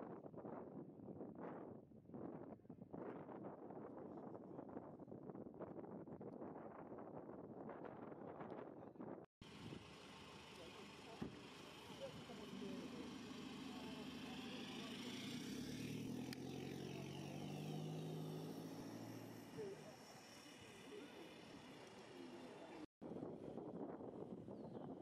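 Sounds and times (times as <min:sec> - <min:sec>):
car engine pulling away: 0:09.4 - 0:22.9.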